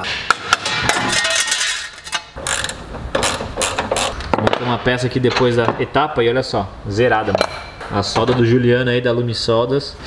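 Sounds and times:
wrench rattling: 0.9s - 4.2s.

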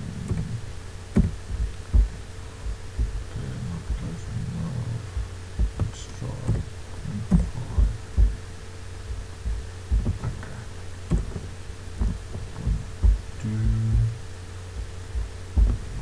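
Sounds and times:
steady electrical hum: 0.0s - 16.0s.

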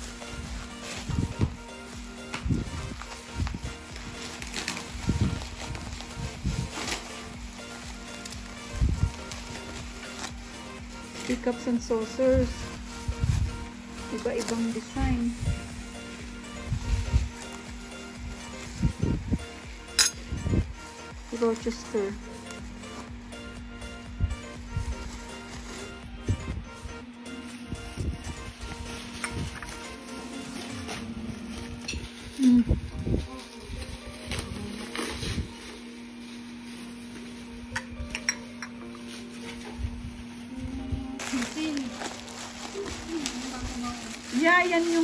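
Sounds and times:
faint background music: 0.0s - 45.0s
china cups clinking: 19.9s - 20.3s, 37.8s - 39.0s.

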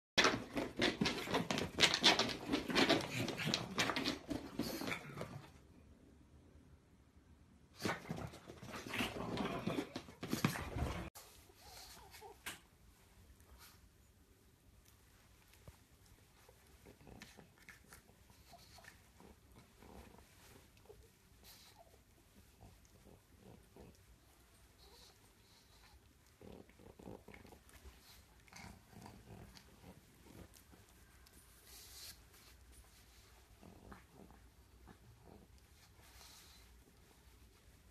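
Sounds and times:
dog breathy noises: 7.8s - 12.7s, 15.5s - 37.9s.

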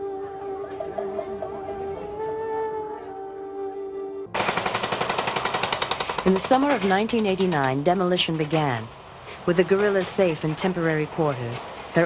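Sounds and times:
jackhammer breaking concrete: 4.4s - 7.6s.

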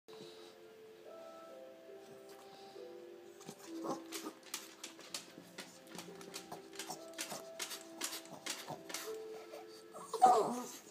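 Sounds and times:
background music with held notes: 0.1s - 10.9s
dog claws tapping on wooden floor: 3.5s - 9.2s.

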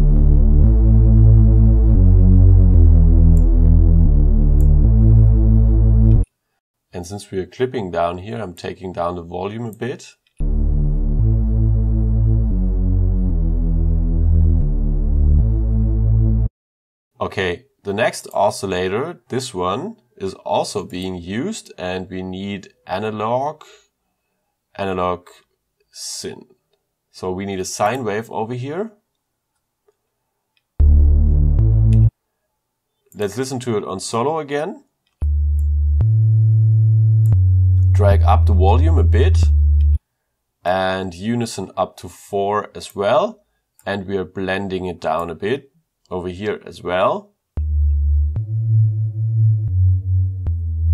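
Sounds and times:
held synth bass notes: 0.0s - 6.3s, 10.4s - 16.5s, 30.8s - 32.1s, 35.2s - 40.0s, 47.6s - 50.9s.

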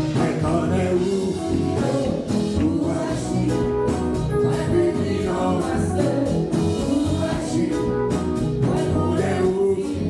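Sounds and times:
man singing into a microphone: 0.0s - 3.8s, 4.5s - 10.0s
instrumental accompaniment: 0.0s - 10.0s.

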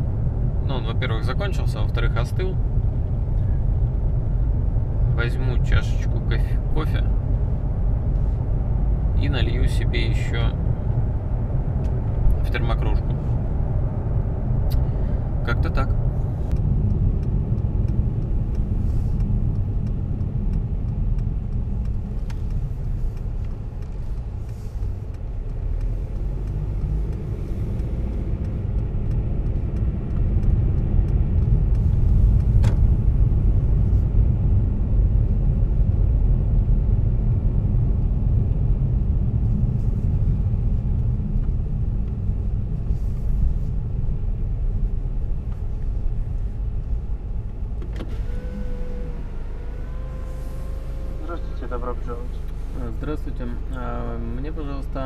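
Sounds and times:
road and tyre rumble in car cabin: 0.0s - 55.0s
short whine stepping in pitch: 48.0s - 52.6s.

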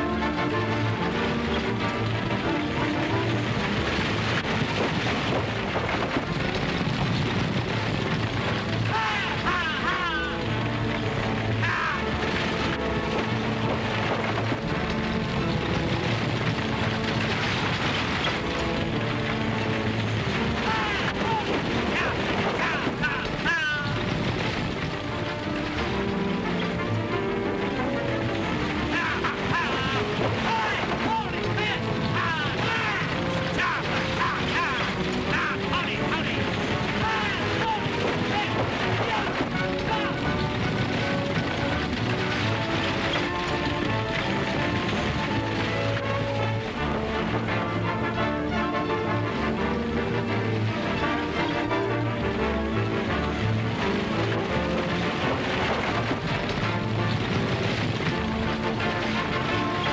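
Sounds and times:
film chase music: 0.0s - 59.9s
galloping horses: 0.0s - 59.9s
racing stagecoach: 0.0s - 59.9s.

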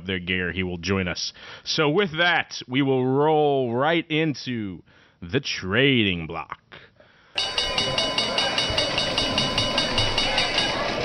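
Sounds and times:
held tones: 7.4s - 11.0s.

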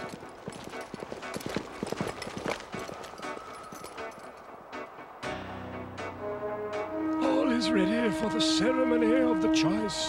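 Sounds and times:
horse galloping: 0.0s - 4.6s.

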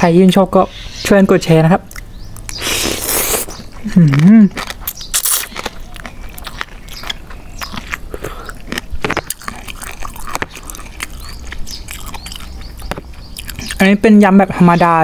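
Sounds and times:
wet chewing and crunching: 1.8s - 14.3s
noodle slurp: 2.5s - 3.6s.

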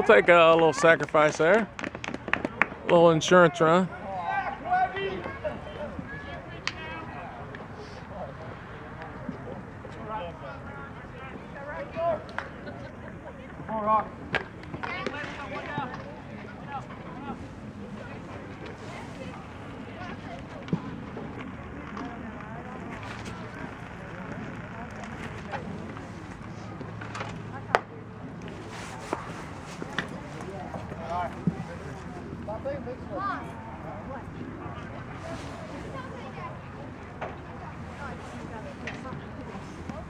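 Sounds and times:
outdoor background noise: 0.0s - 40.0s
voices calling out: 2.4s - 40.0s
baseball bat crack: 6.6s - 6.9s.

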